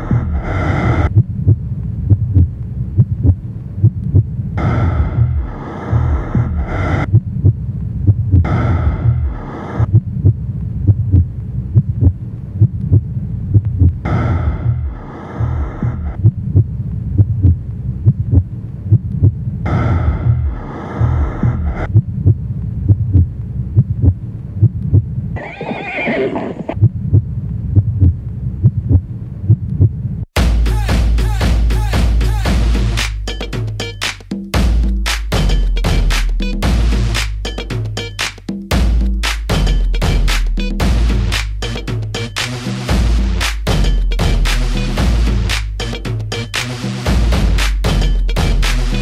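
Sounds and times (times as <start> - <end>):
heartbeat-like throb: 0.0 - 25.4, 26.8 - 33.7, 34.6 - 37.9, 38.7 - 49.0
horse neighing: 25.4 - 26.8
loud music track: 30.4 - 49.0.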